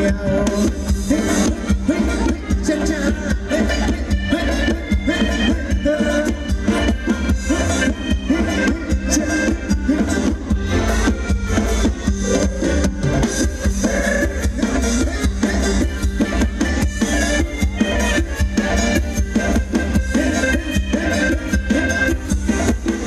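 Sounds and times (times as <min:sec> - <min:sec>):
amplified dance band music: 0:00.0 - 0:23.0
heavy bass: 0:00.0 - 0:23.0
steady drum beat: 0:00.0 - 0:23.0.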